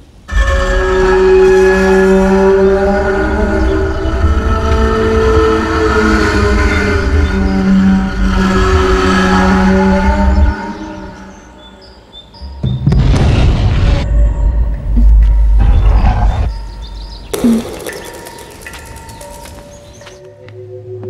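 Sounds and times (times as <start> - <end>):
horror film score chords: 0.0 - 21.0
loud boom and crash sting: 12.8 - 14.2.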